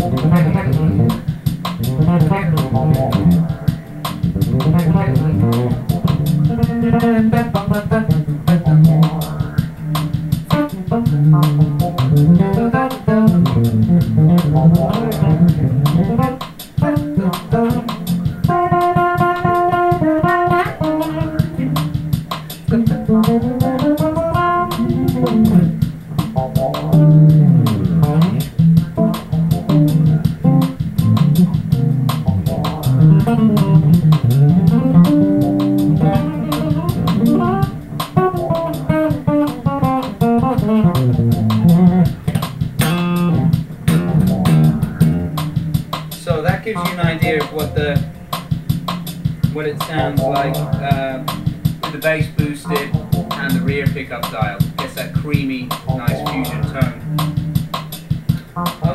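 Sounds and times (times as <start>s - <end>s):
electric bass played fingerstyle: 0.0s - 58.9s.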